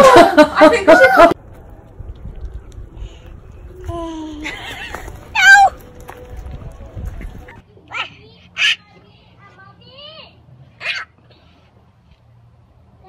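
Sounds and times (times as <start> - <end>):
high-pitched cries: 4.0 - 5.8.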